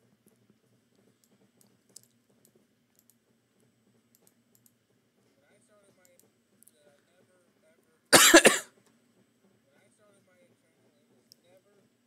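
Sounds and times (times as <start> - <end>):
computer mouse clicks: 0.2 - 3.2, 4.1 - 4.8, 6.0 - 6.8.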